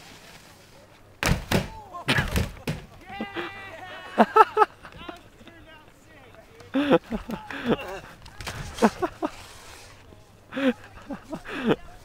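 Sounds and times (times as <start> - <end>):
people laughing and whooping: 1.7 - 5.5, 6.3 - 9.6, 10.5 - 12.0.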